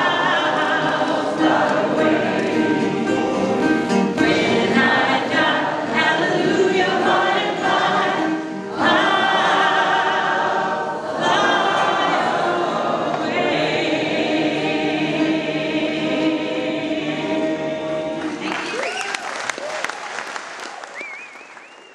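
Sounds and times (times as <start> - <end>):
resonator guitar: 0.0 - 18.5
voices singing held notes: 0.0 - 18.5.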